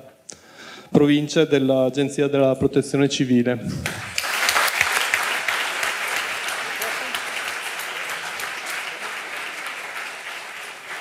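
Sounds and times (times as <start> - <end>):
audience applauding: 3.8 - 11.0.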